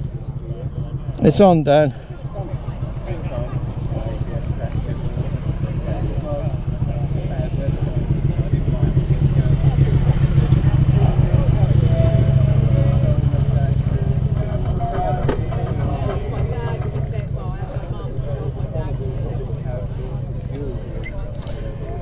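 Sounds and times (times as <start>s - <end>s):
motorcycle engine idling: 0.0s - 22.0s.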